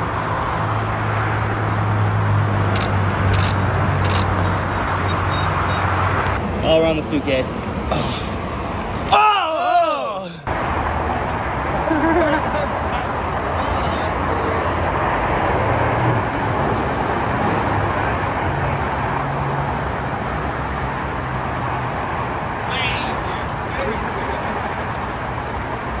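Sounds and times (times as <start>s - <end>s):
freeway traffic passing: 0.0s - 26.0s.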